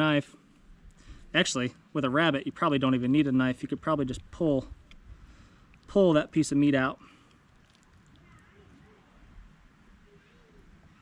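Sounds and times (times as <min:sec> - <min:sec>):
faint short calls: 0:07.1 - 0:09.3, 0:09.9 - 0:11.0.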